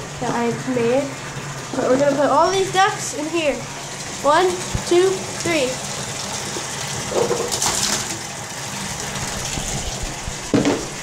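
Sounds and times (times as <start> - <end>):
tap water running into bathtub: 0.0 - 11.0
knock: 10.5 - 10.9.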